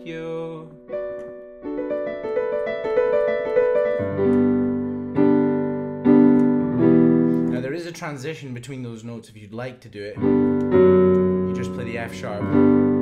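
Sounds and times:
digital piano notes and chords: 0.0 - 8.6, 10.1 - 13.0.

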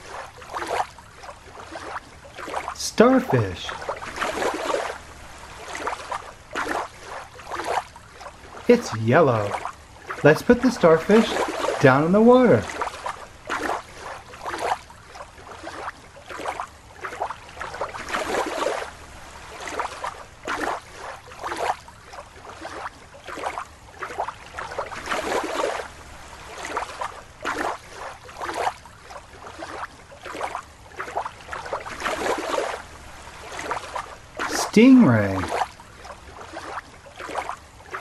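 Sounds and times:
water sloshing and splashing: 0.0 - 38.0.

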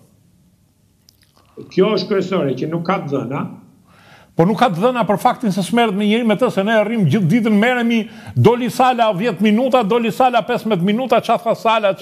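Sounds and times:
man speaking: 1.6 - 3.7, 4.4 - 12.0.

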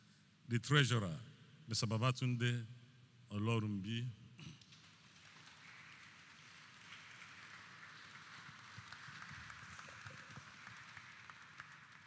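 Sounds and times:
faint applause: 4.7 - 12.0.

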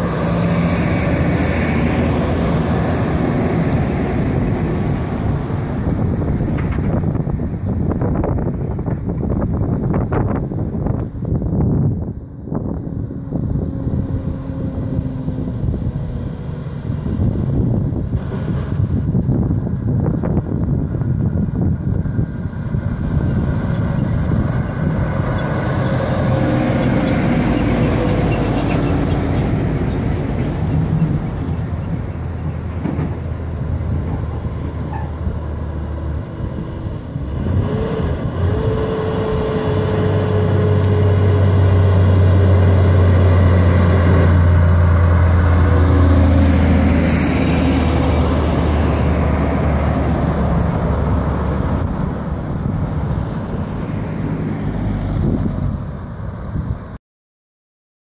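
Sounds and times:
diesel truck engines droning: 0.0 - 57.0
tyre and road noise: 0.0 - 57.0.

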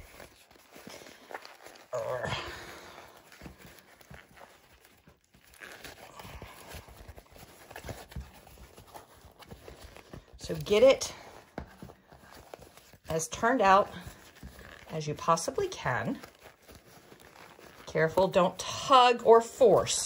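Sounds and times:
fabric bag rustling and crumpling: 0.0 - 20.0.

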